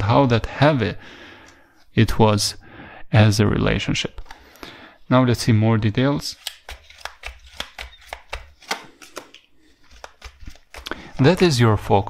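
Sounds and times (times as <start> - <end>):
cards being shuffled: 6.2 - 12.0
card snap: 6.4 - 11.4.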